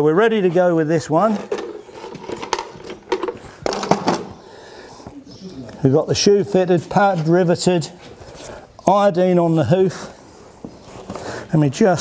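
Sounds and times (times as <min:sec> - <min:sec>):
caddy set down on concrete: 0:01.4 - 0:04.4.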